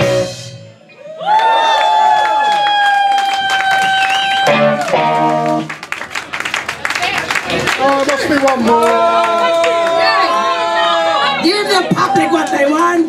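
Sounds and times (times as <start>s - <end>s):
live band playing: 0.0s - 1.0s, 3.6s - 10.4s
audience clapping and cheering: 1.0s - 12.9s.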